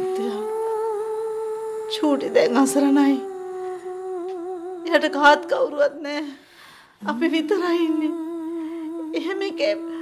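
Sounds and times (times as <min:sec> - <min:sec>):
long held humming note: 0:00.0 - 0:06.1, 0:07.9 - 0:10.0.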